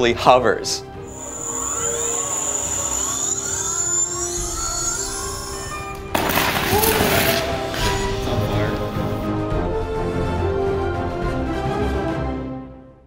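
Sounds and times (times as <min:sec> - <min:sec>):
music: 0:00.0 - 0:13.0
rising whine: 0:01.0 - 0:06.2
steady high tone: 0:01.0 - 0:09.2
crackling hissing sparks: 0:01.1 - 0:09.3.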